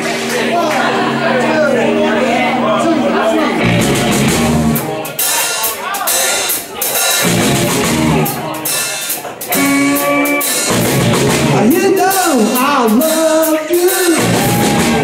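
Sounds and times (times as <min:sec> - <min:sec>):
electric bass: 0:00.0 - 0:05.2, 0:07.2 - 0:08.9, 0:09.5 - 0:15.0
electric guitar: 0:00.0 - 0:05.3, 0:07.1 - 0:15.0
drum kit steady beat: 0:03.6 - 0:15.0.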